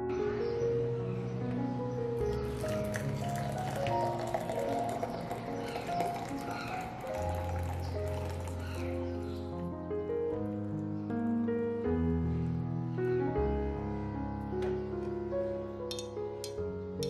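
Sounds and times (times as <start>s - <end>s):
soft piano music: 0.0s - 17.0s
hot water pouring into glass jug: 2.4s - 8.9s.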